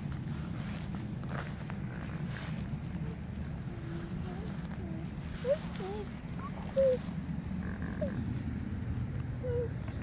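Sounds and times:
faint high gliding calls: 0:05.3 - 0:08.4, 0:09.4 - 0:10.0.

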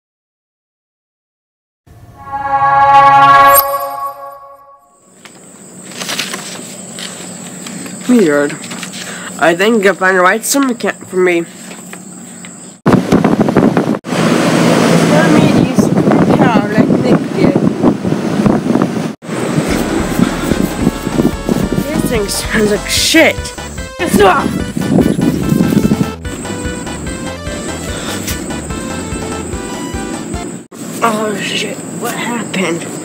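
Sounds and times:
droning tones sound effect: 0:01.9 - 0:05.0, 0:19.3 - 0:23.1
high-pitched whine: 0:01.9 - 0:05.0, 0:19.3 - 0:24.2
paper pages rustling: 0:05.2 - 0:09.2
wind noise on microphone: 0:12.9 - 0:26.7
low hum: 0:19.3 - 0:23.8.

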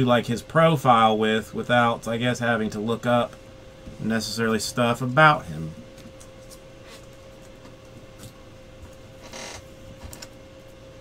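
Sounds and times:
steady faint hum: 0:00.0 - 0:11.0.

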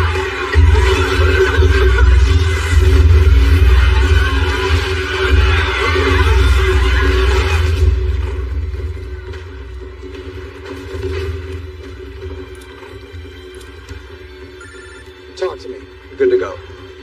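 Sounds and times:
film score drone: 0:00.0 - 0:17.0
electronic phone ring: 0:14.6 - 0:15.4.

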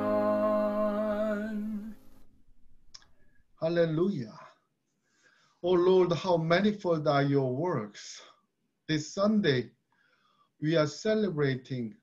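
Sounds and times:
person singing a hymn: 0:00.0 - 0:02.0.

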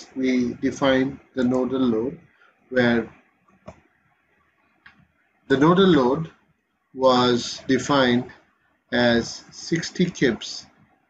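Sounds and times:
computer mouse clicks: 0:03.5 - 0:03.9.

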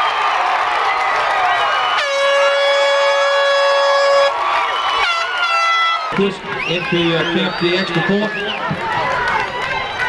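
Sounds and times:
air horn blasts: 0:01.9 - 0:04.4, 0:05.0 - 0:06.1.

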